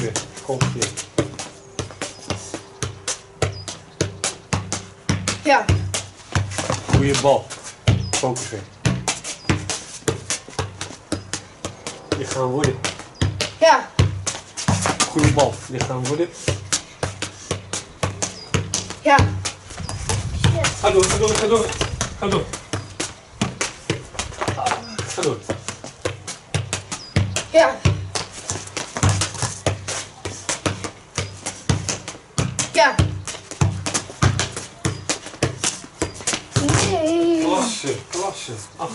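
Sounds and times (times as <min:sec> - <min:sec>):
football touch thuds: 0:00.0 - 0:37.3
ball bouncing: 0:00.0 - 0:37.4.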